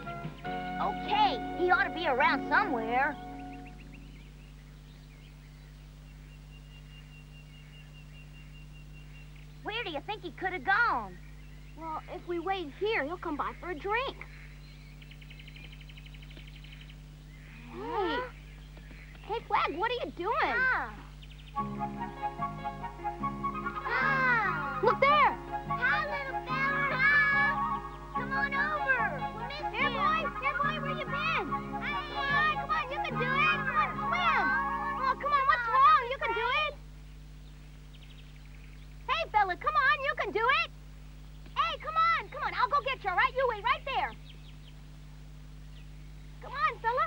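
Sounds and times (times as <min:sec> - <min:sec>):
background music: 0:00.0 - 0:04.3, 0:21.5 - 0:36.5
tape hum and hiss: 0:00.0 - 0:47.0
cartoon bear cub crying: 0:17.6 - 0:18.3, 0:23.8 - 0:27.6.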